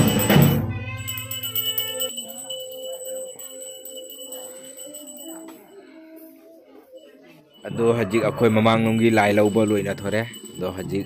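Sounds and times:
small bell ringing: 0.0s - 11.0s
murmur of voices: 0.9s - 11.0s.

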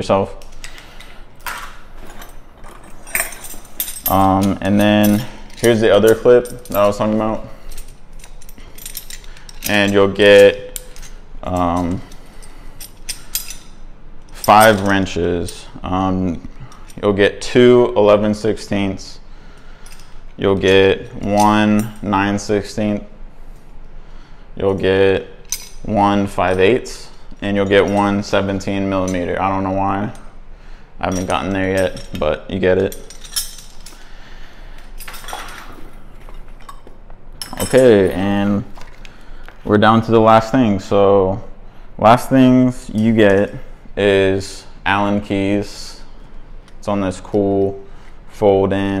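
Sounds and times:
metal wrenches clinking: 0.4s - 15.8s, 25.4s - 30.3s, 31.0s - 34.1s, 34.8s - 39.3s.

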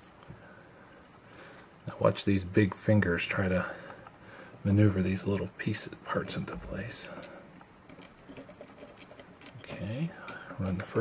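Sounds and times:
fingers handling small screw: 6.2s - 11.0s.

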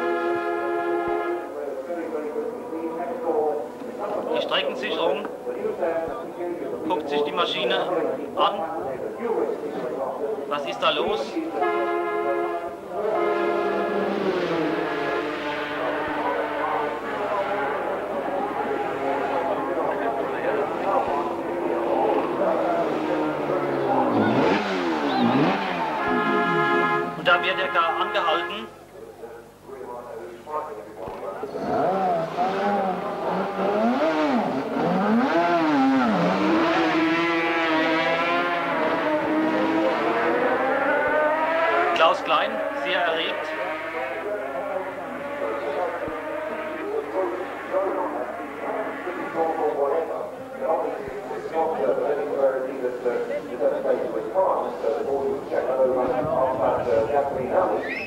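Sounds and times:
motorcycle engines revving: 0.0s - 28.4s, 30.5s - 58.0s
background voices: 12.6s - 33.9s, 41.6s - 58.0s.

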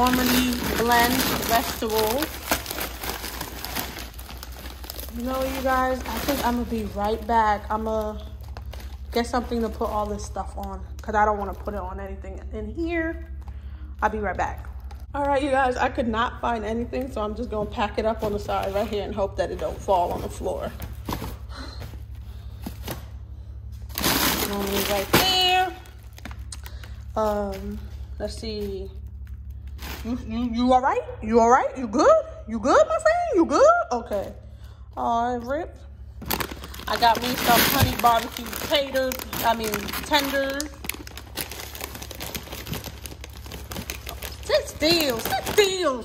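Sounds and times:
plastic bags crinkling: 0.0s - 12.2s, 17.1s - 23.1s, 23.8s - 30.2s, 36.2s - 46.0s
steady low hum: 0.0s - 46.0s.

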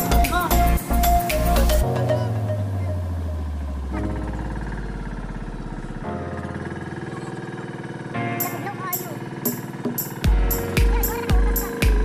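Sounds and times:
background music: 0.0s - 5.1s, 8.2s - 12.0s
boat engine running: 0.0s - 12.0s.

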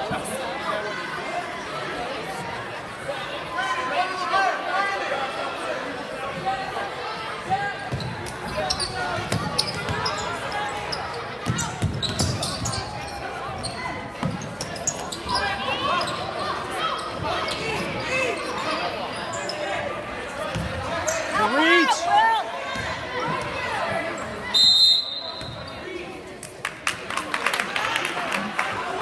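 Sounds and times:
spectator chatter: 0.0s - 29.0s.

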